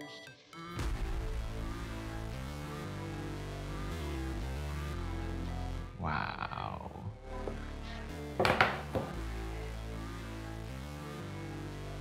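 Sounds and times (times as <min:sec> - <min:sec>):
background music with held notes: 0:00.0 - 0:06.0, 0:07.0 - 0:12.0
box knocking on wooden table: 0:08.4 - 0:09.2.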